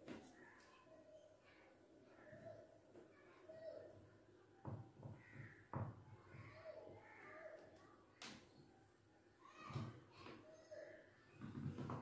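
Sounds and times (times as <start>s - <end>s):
crows cawing faintly: 5.0s - 5.9s, 6.6s - 7.7s.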